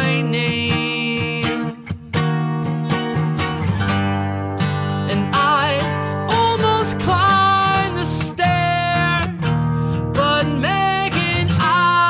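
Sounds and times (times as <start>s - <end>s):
man singing: 0.0s - 2.2s, 4.9s - 12.0s
strummed acoustic guitar: 0.0s - 12.0s.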